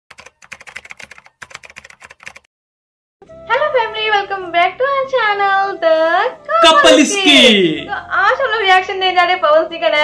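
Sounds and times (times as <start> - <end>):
fast keyboard typing: 0.1 - 2.5.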